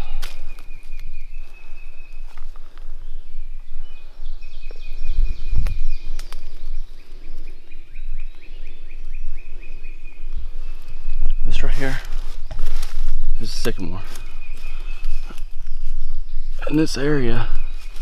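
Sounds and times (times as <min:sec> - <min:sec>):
twigs snapping: 0:00.0 - 0:03.0, 0:05.5 - 0:07.5, 0:11.6 - 0:16.0, 0:17.6 - 0:18.0
footsteps through dry leaves: 0:11.4 - 0:16.1.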